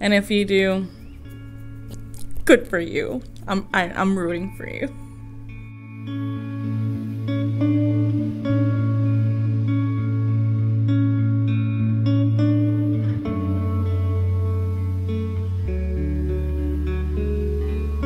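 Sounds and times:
sustained low chords: 0:00.0 - 0:18.0
plucked guitar: 0:00.6 - 0:18.0.

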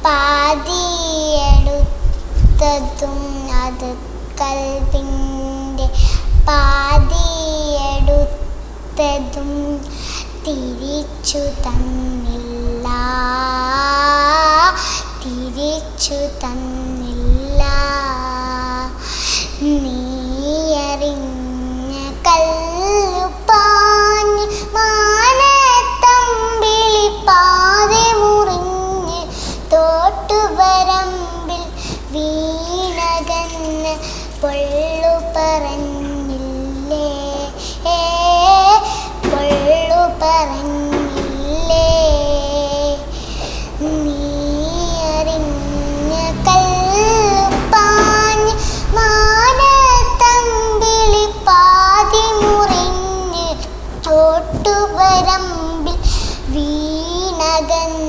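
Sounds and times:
girl singing: 0:00.0 - 0:58.0.

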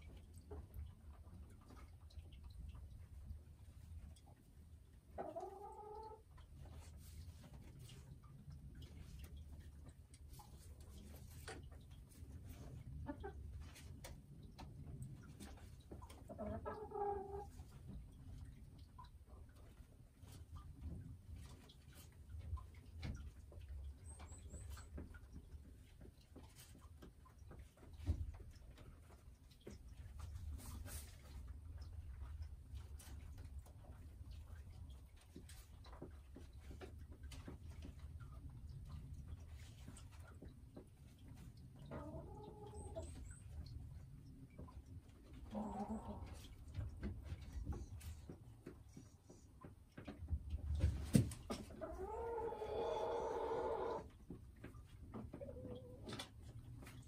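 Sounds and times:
hen clucking: 0:05.0 - 0:06.8, 0:12.4 - 0:14.0, 0:15.4 - 0:17.8, 0:41.3 - 0:43.7, 0:44.6 - 0:46.7, 0:51.5 - 0:54.2, 0:55.1 - 0:56.3.

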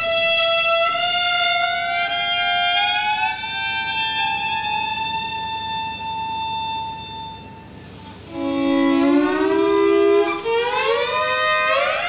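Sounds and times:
violin bowed note sliding up: 0:00.0 - 0:12.0.

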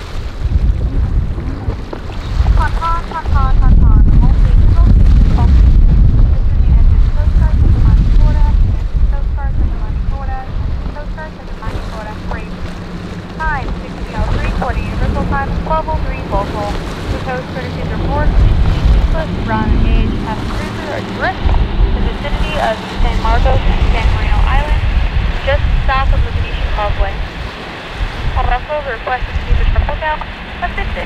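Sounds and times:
boat engine hum: 0:00.0 - 0:31.0
outboard motors running: 0:00.0 - 0:31.0
wind and water rushing: 0:00.0 - 0:31.0.

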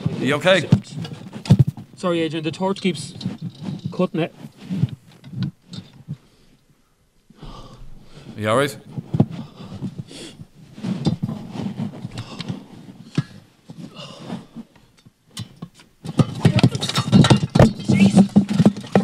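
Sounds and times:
handling noise scuffling and knocks: 0:00.0 - 0:06.3, 0:07.6 - 0:19.0.

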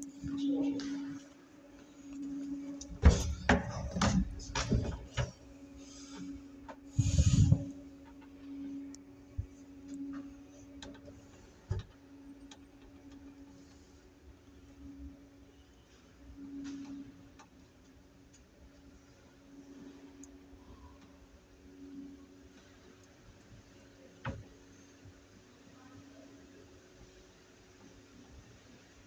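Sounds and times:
lift drive humming: 0:00.0 - 0:15.1
lift cabin bump: 0:02.9 - 0:05.4.

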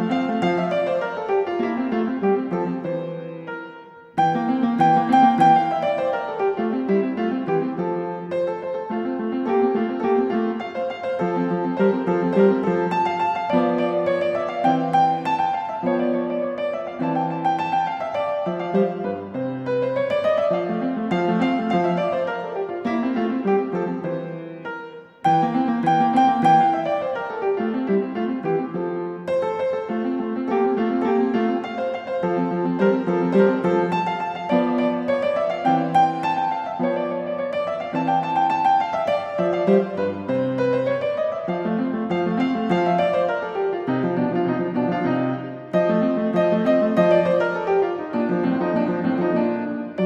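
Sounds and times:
piano music: 0:00.0 - 0:50.0.

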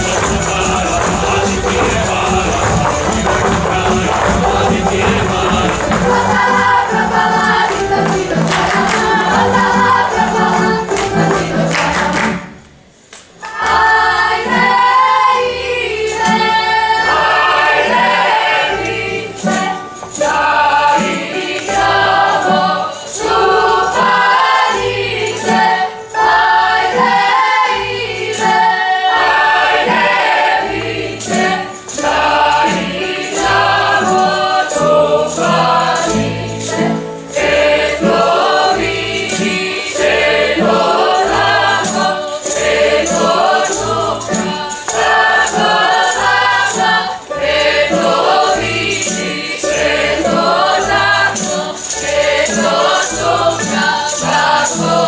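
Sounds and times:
plucked bass: 0:00.0 - 0:12.2
chorus singing folk song: 0:00.0 - 0:55.0
strummed strings: 0:00.0 - 0:55.0.

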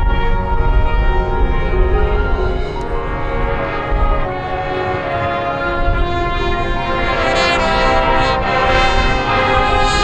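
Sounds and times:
marching band sustained chords: 0:00.0 - 0:10.0.

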